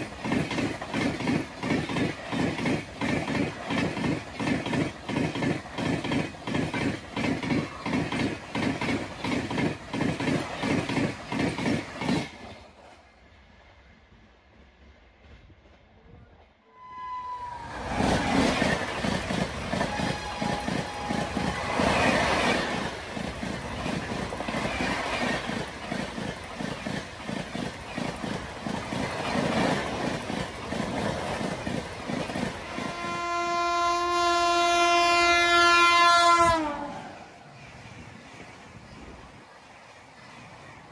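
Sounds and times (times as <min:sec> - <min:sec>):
train wheels clattering over rail joints: 0:00.0 - 0:12.9, 0:18.2 - 0:33.0
locomotive horn blast: 0:32.7 - 0:37.0.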